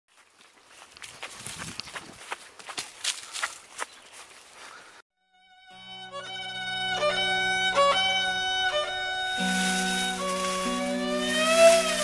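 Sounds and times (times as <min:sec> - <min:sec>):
brisk footsteps: 0:00.1 - 0:04.9, 0:09.4 - 0:12.0.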